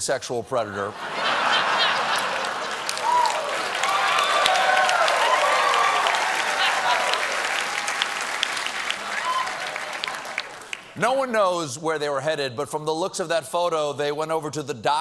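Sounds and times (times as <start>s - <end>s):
studio audience applauding and cheering: 1.0s - 11.0s.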